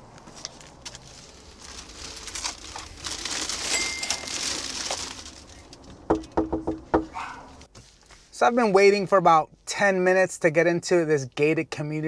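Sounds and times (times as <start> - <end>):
plastic bags rustling: 0.3 - 6.4.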